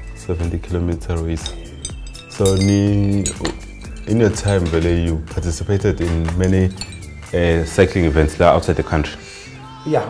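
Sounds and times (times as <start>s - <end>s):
background music: 0.0s - 10.0s
metal medals clinking: 1.4s - 5.1s, 6.1s - 7.4s.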